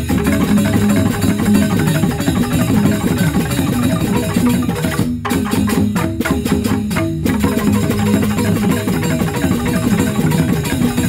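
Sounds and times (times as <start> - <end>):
drums: 0.0 - 11.0
tuned mallet instruments: 0.0 - 11.0.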